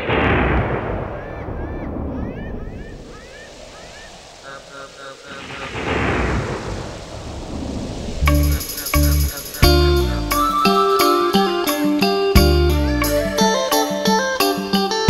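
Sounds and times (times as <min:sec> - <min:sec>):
thunder rolling: 0:00.0 - 0:10.7
steady rain: 0:00.0 - 0:15.0.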